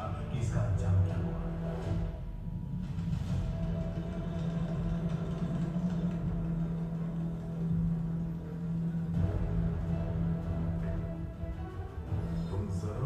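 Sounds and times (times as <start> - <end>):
continuous rumble: 0.0 - 13.0
low drone: 0.0 - 13.0.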